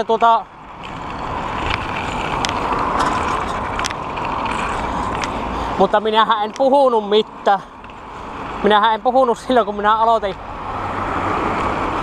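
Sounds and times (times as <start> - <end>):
bicycle tyre noise on asphalt: 0.0 - 12.0
wind on microphone: 0.7 - 5.8.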